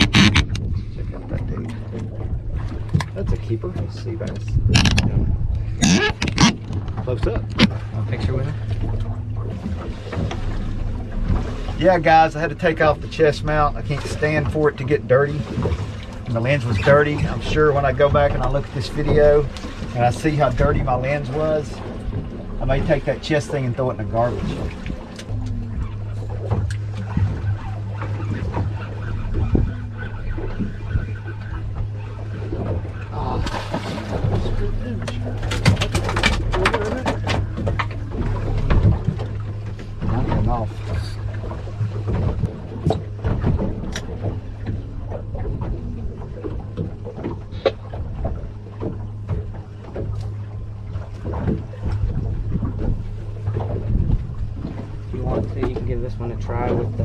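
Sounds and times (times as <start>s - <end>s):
knocks and clicks: 0.0s - 0.7s, 2.8s - 5.2s, 5.8s - 7.8s, 35.1s - 39.4s
low hum: 0.0s - 57.0s
water lapping against boat hull: 0.0s - 57.0s.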